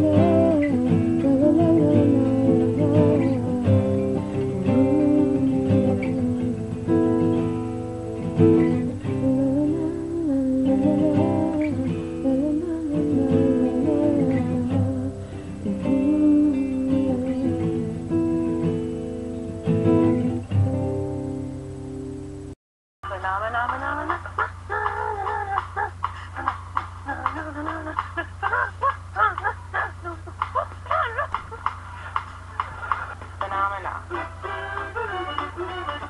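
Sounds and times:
woman humming: 0.0s - 6.7s, 8.6s - 18.1s, 23.6s - 31.4s
acoustic guitar: 0.0s - 22.6s, 23.5s - 36.0s
woman making chicken-like noises: 24.1s - 31.4s.

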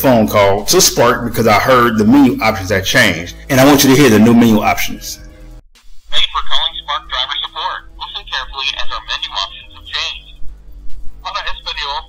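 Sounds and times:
recorded voice over telephone: 6.1s - 10.3s, 11.2s - 12.0s.

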